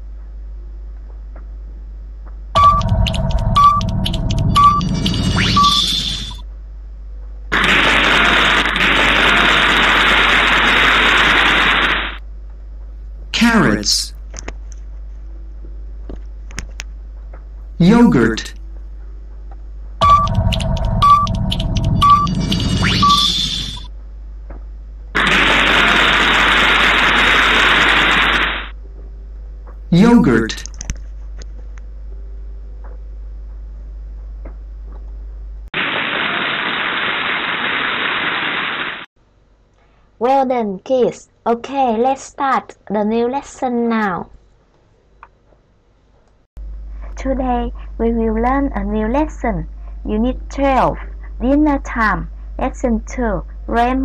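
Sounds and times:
timer ticking: 0:02.6 - 0:05.0, 0:20.0 - 0:23.3
short beeps: 0:02.6 - 0:06.4, 0:20.0 - 0:23.9
loud even game noise: 0:07.5 - 0:12.2, 0:25.2 - 0:28.7
hiss-like sound effect: 0:07.6 - 0:12.2, 0:25.2 - 0:28.7.

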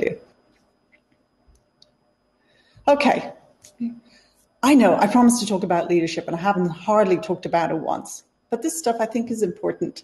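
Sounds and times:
woman speaking: 0:02.9 - 0:04.0, 0:04.6 - 0:10.0.

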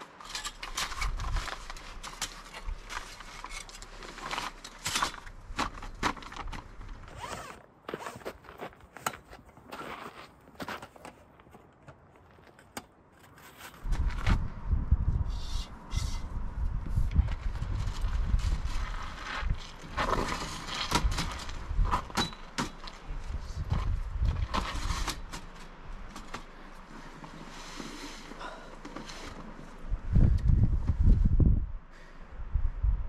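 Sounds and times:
low rumble: 0:13.8 - 0:22.2, 0:29.6 - 0:33.0.

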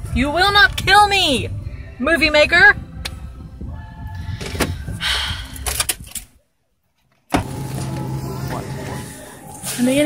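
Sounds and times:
supermarket background noise: 0:07.4 - 0:10.0.

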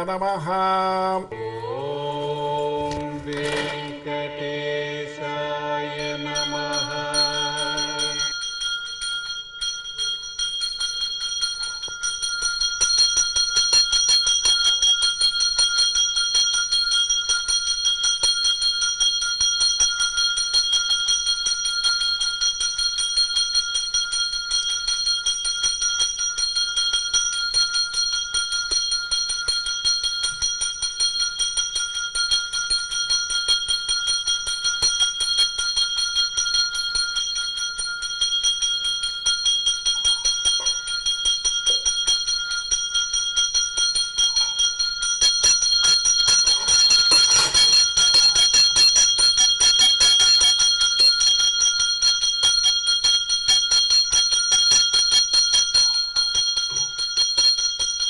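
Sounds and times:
small bell rung rapidly: 0:06.0 - 0:58.0.

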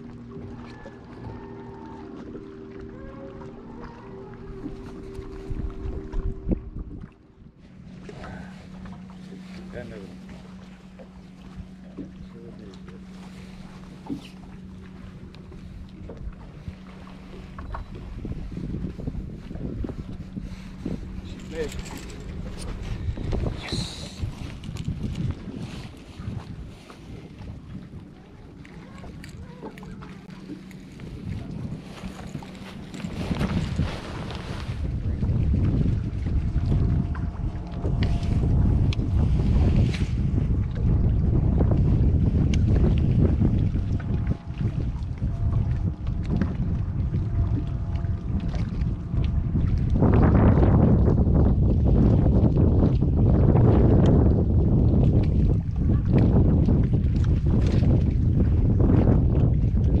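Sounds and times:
wind buffeting microphone: 0:00.0 - 1:00.0.

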